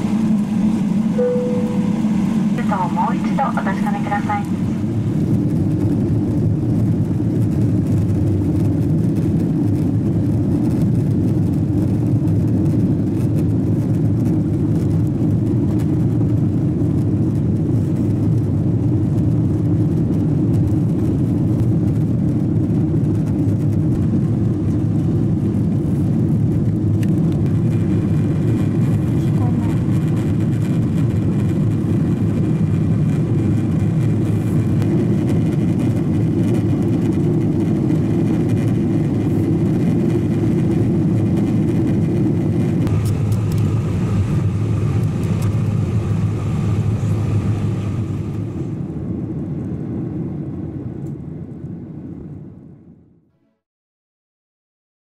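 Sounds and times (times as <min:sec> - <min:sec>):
jet airliner cabin noise: 0:00.0 - 0:53.0
faint high tone: 0:01.2 - 0:02.2.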